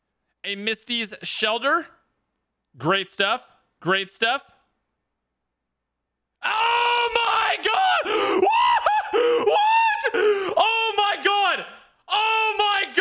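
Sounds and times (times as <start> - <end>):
man screaming and yelling: 6.4 - 13.0.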